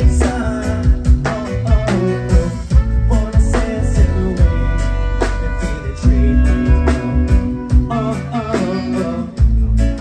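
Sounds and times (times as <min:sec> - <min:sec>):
electric guitar melody: 0:00.0 - 0:10.0
live band playing: 0:00.0 - 0:10.0.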